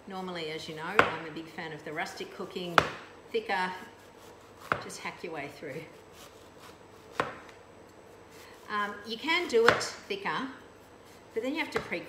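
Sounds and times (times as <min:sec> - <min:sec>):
knife slicing zucchini: 0:02.0 - 0:10.2.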